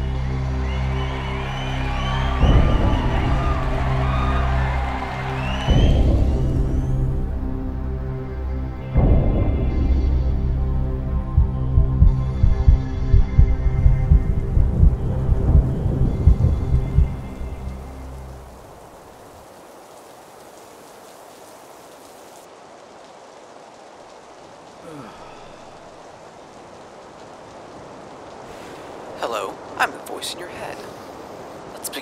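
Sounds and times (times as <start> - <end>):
low dark music drone: 0.0 - 18.5
steady rain: 0.0 - 32.0
thunder rumbling: 1.0 - 20.3.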